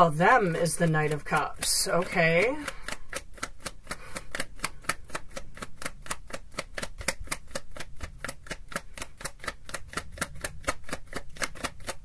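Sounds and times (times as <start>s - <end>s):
cards being shuffled: 0.4s - 12.0s.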